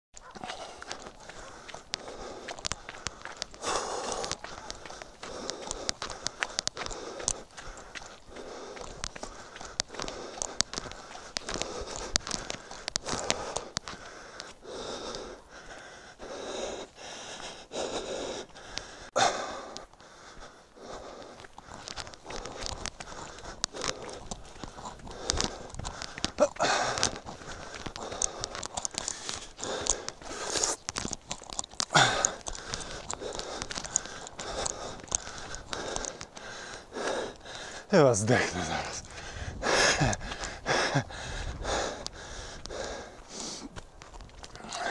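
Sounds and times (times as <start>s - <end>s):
runner breathing hard: 0.2s - 44.9s.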